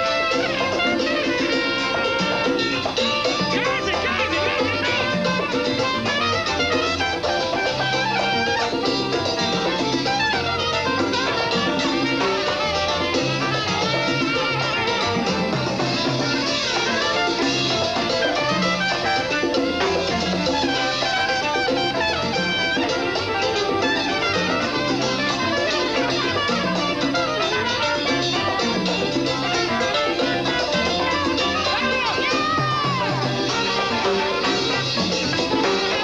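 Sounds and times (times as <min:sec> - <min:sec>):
congas: 0:00.0 - 0:36.0
latin dance band playing: 0:00.0 - 0:36.0
saxophone: 0:00.0 - 0:36.0
trumpet: 0:00.0 - 0:36.0.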